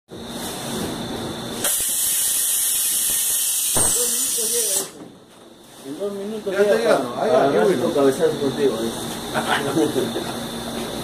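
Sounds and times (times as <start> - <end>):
compressed air hiss: 1.6 - 5.0.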